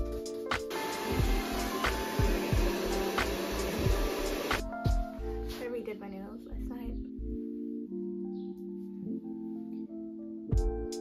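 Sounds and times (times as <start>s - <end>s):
background music with beat: 0.0s - 5.8s, 7.4s - 11.0s
hair dryer blowing: 0.7s - 4.6s.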